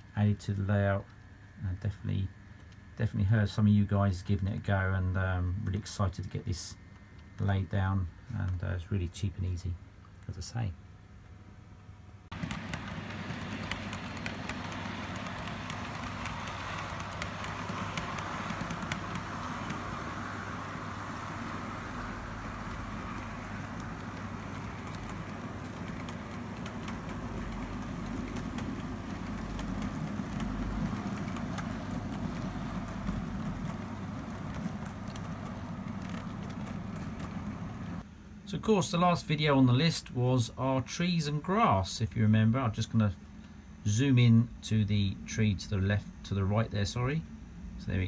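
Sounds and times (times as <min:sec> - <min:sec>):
model train rumble: 0:12.3 - 0:38.0
small wheel clicks: 0:12.3 - 0:38.0.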